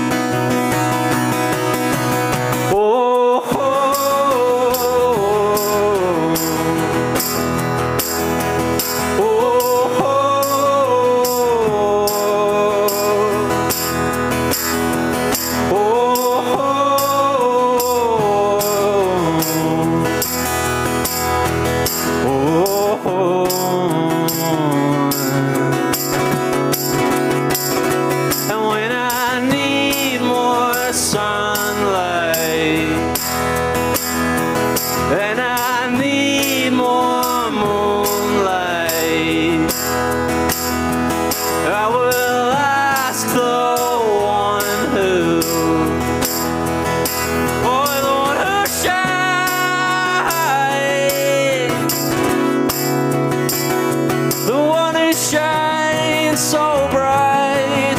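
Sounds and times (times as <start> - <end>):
man singing: 0.0 - 53.2, 54.1 - 57.9
hand shaker rhythm: 0.0 - 57.9
strummed acoustic guitar: 0.0 - 57.9.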